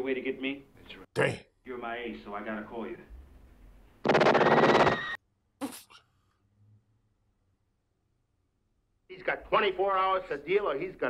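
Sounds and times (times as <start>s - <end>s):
sharp gunshot: 4.0s - 5.0s
rapid gunfire: 4.0s - 5.1s.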